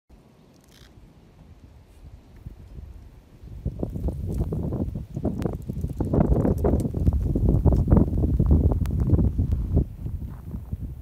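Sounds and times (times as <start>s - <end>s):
wind buffeting microphone: 1.5s - 11.0s.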